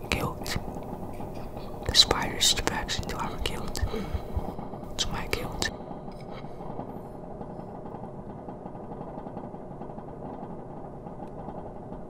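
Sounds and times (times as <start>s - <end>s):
person whispering: 0.0s - 5.7s.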